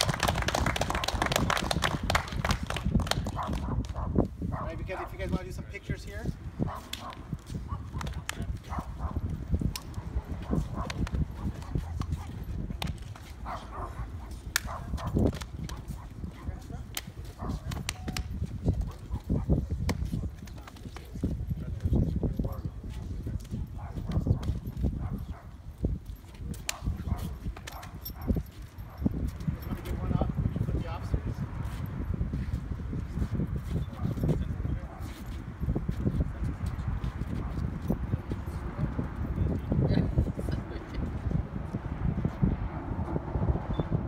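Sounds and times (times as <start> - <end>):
shoes clicking on concrete: 0.0 - 5.6, 6.4 - 30.2, 31.6 - 39.4.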